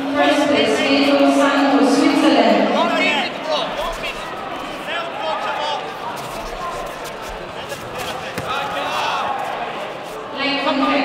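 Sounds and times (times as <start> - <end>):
voices calling out in a hall: 0.0 - 11.0
shoes squeaking on a mat: 5.6 - 10.4.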